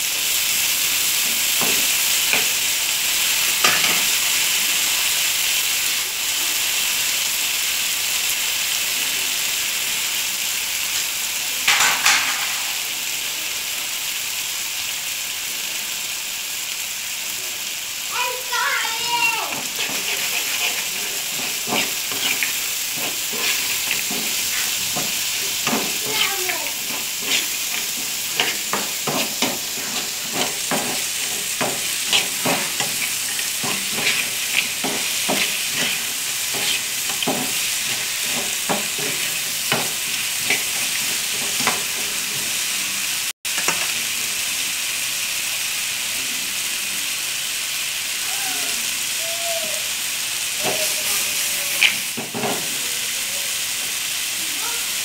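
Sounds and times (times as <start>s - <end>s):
food sizzling in a frying pan: 0.0s - 55.0s
metal spoon scraping and stirring: 19.5s - 42.2s.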